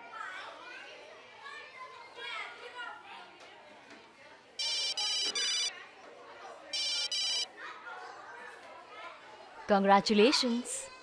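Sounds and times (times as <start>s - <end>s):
phone ringtone trilling: 4.6s - 5.7s, 6.8s - 7.5s.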